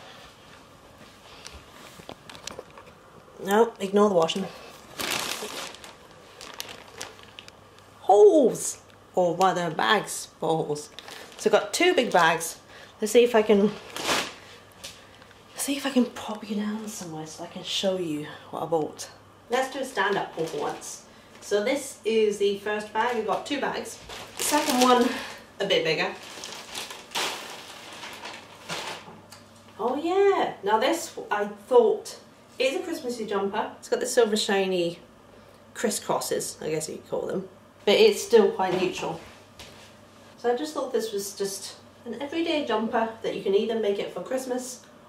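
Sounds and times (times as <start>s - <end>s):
plastic bag crinkling: 1.9s - 2.9s, 4.2s - 7.9s, 10.7s - 12.6s, 13.4s - 15.5s, 20.0s - 21.0s, 23.0s - 29.1s.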